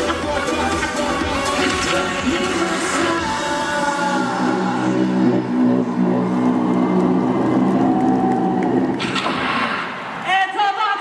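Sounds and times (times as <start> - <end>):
live pop music: 0.0 - 6.2
crowd cheering: 3.2 - 10.2
crowd applause: 4.8 - 9.2.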